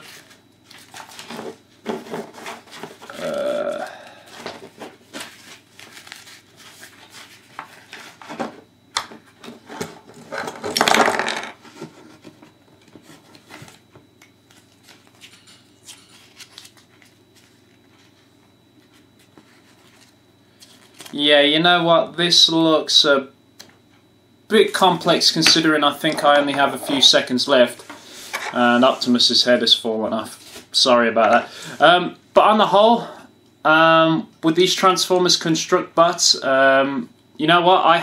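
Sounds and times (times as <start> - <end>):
paper pages turning: 4.7 - 8.2, 14.4 - 18.1.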